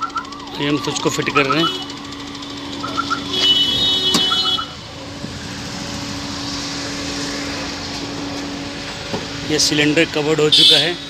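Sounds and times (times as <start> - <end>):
car engine idling: 0.0 - 10.4
short electronic beeps: 2.8 - 3.4
steady rushing noise: 3.8 - 10.3.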